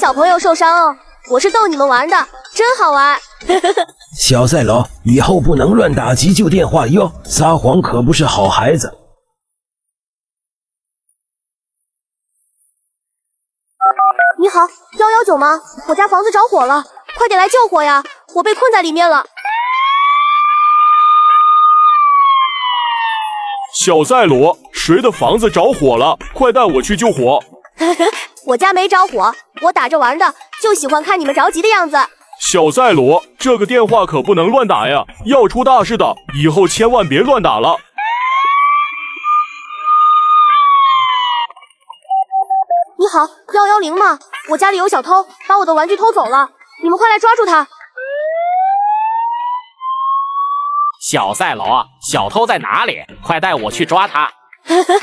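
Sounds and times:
fire engine siren wailing: 0:22.0 - 0:23.8, 0:40.6 - 0:41.5, 0:48.0 - 0:51.0.

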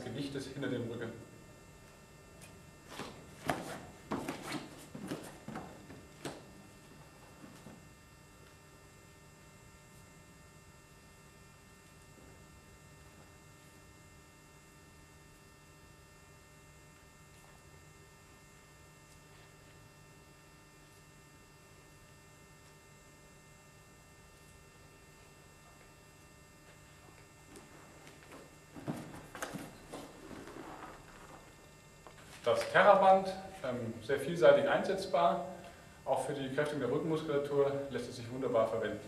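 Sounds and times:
faint electrical hum: 0:00.0 - 0:39.0.

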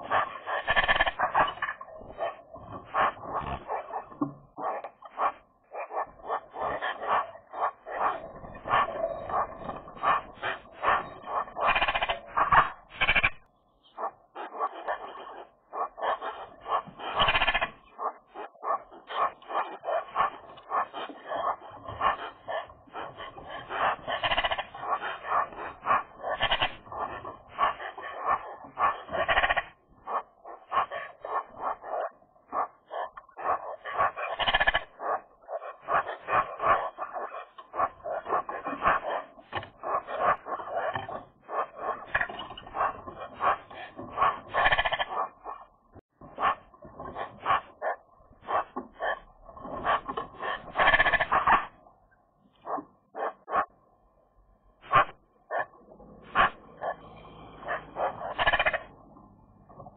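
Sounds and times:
magpies chattering: 0:00.0 - 0:45.6, 0:50.7 - 0:51.6, 0:56.8 - 0:58.9.

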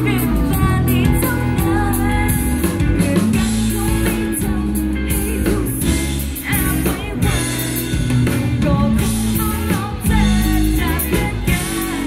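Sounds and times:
pop-rock band playing: 0:00.0 - 0:12.0
woman singing into a microphone: 0:00.0 - 0:12.0.

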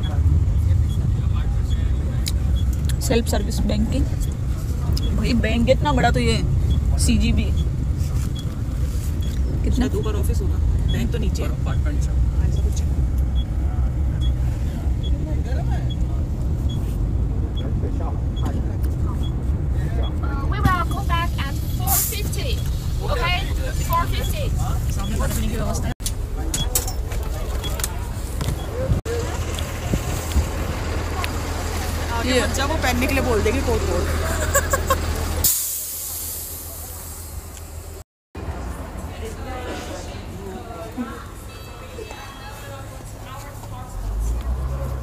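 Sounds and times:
bus engine rumble: 0:00.0 - 0:45.0
road noise: 0:00.0 - 0:45.0
voices: 0:00.0 - 0:45.0.

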